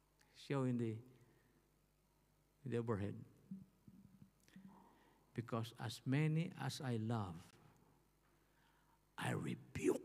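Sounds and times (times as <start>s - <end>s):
man's amplified voice: 5.4s - 7.5s, 9.2s - 10.0s.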